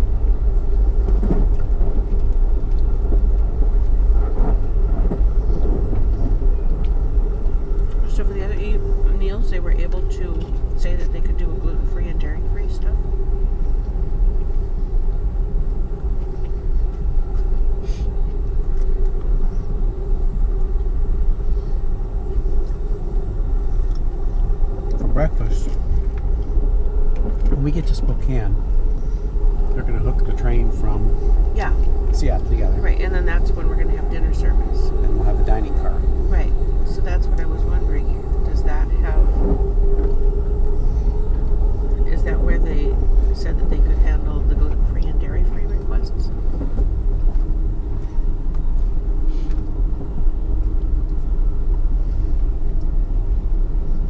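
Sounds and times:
steady hum: 0:00.0 - 0:54.0
train rumble from inside car: 0:00.0 - 0:54.0.

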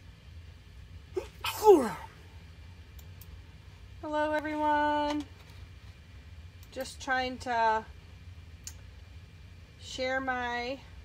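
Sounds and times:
person sneezing: 0:01.2 - 0:02.2.

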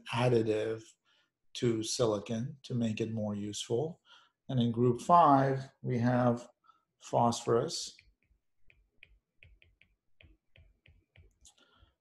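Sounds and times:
stylus tapping on glass screen: 0:07.9 - 0:11.5.

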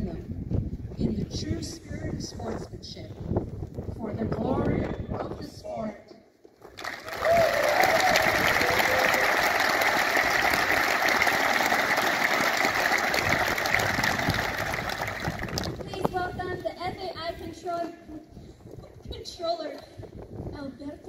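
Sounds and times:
audience applauding: 0:06.8 - 0:15.8.

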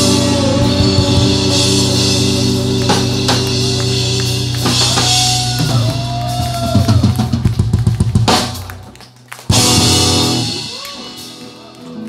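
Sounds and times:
drum fill: 0:00.0 - 0:11.5
bass guitar: 0:00.0 - 0:12.0
electric guitar bending notes: 0:00.0 - 0:12.0.

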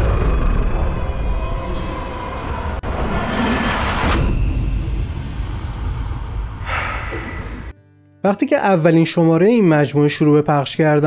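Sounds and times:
rushing noise: 0:00.0 - 0:07.7.

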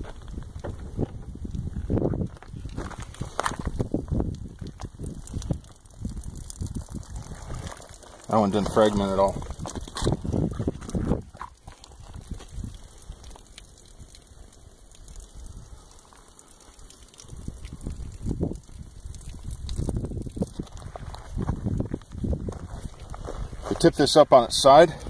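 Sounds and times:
wind buffeting microphone: 0:00.0 - 0:07.9, 0:08.5 - 0:13.3, 0:17.2 - 0:23.8.

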